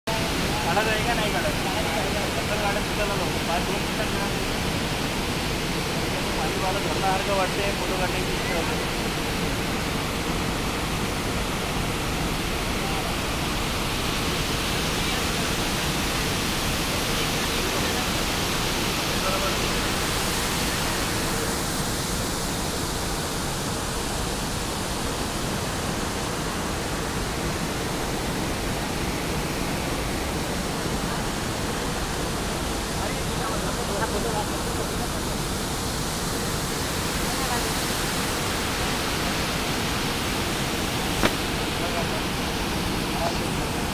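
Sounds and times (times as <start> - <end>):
water rushing through cooling tower: 0.1 - 43.9.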